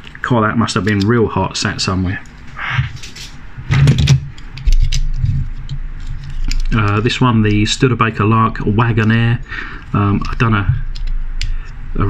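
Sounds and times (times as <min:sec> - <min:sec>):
metal toy cars clicking together: 0:06.0 - 0:07.6.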